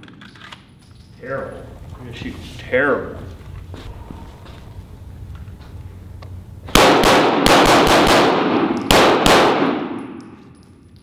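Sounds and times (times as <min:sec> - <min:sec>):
pistol shots indoors: 0:06.7 - 0:10.9.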